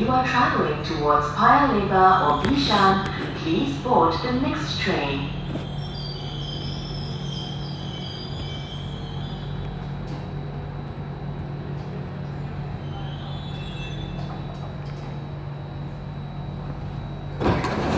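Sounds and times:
metro train running: 0.0s - 17.9s.

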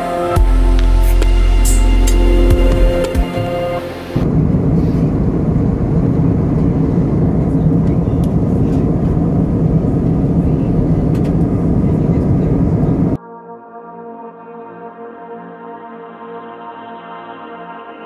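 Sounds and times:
airliner cabin engine rumble: 0.0s - 13.2s.

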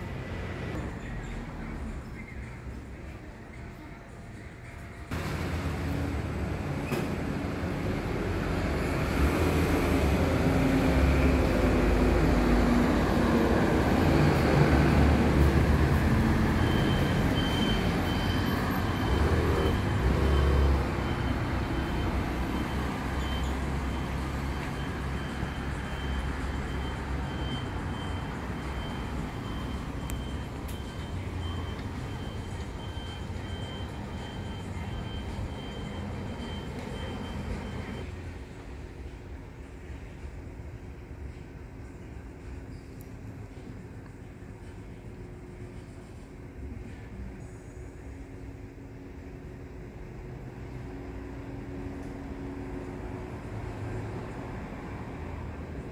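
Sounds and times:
heavy vehicle rumbling: 0.0s - 42.6s.

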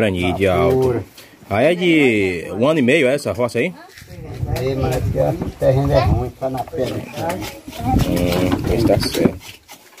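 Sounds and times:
people talking: 0.0s - 9.4s.

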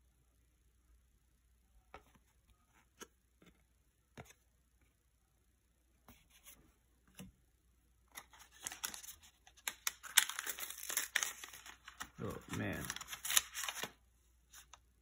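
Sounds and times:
wax paper wrapper crinkling and tearing: 8.1s - 14.0s.

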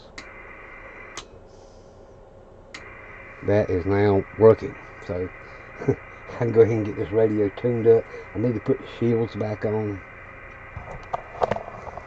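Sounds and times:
low electrical hum: 0.0s - 12.0s
sharp clicks: 2.7s - 2.9s.

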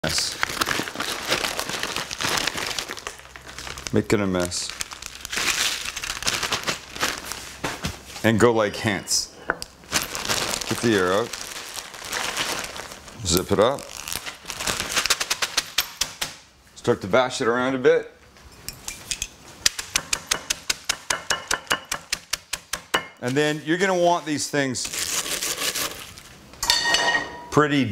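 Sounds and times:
plastic bag of chips crinkling: 0.0s - 7.6s, 9.8s - 15.8s, 23.3s - 26.4s.

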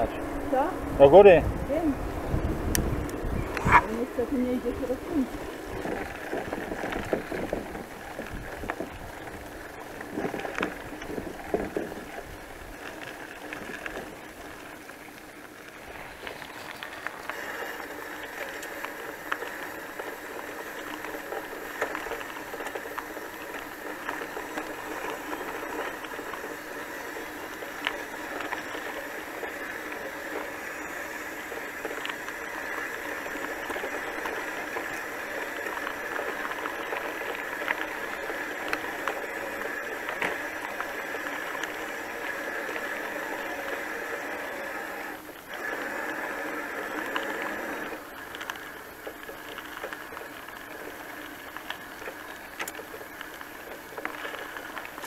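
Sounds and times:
rattles over bumps: 0.0s - 43.3s
bicycle rolling on gravel: 0.0s - 55.0s.

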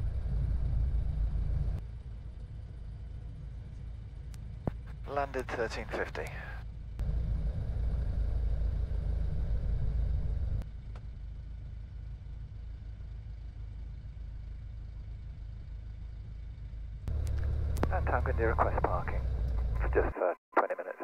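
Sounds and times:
light aircraft engine droning: 0.0s - 20.8s.

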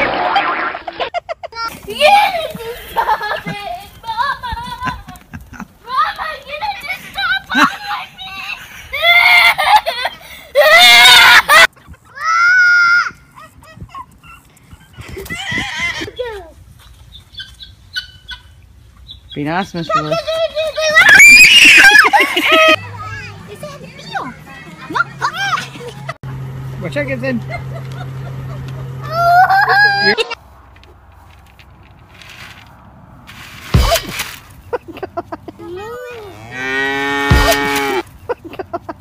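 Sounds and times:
child shrieking high-pitched: 10.6s - 13.2s, 20.8s - 22.2s
child shouting: 12.1s - 13.2s, 20.0s - 24.3s, 29.0s - 30.2s, 35.6s - 36.4s
cow mooing: 36.2s - 38.0s.

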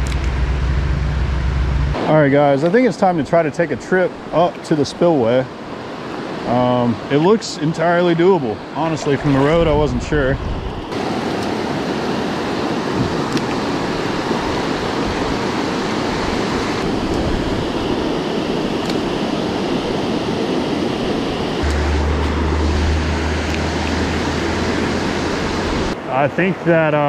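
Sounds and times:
low rumble: 0.0s - 2.3s, 21.6s - 26.0s
creek water rushing: 0.0s - 27.0s.

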